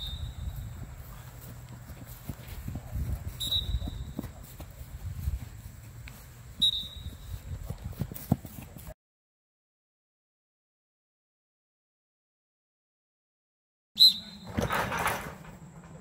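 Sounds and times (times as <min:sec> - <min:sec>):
wind buffeting microphone: 0:00.0 - 0:08.4.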